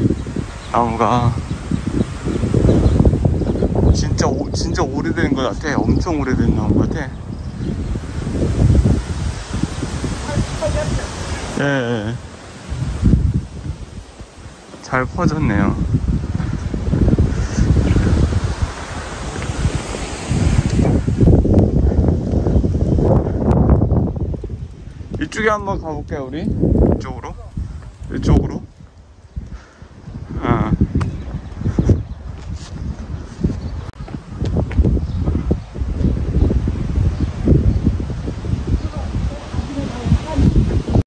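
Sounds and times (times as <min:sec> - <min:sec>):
wind buffeting microphone: 0:00.0 - 0:41.0.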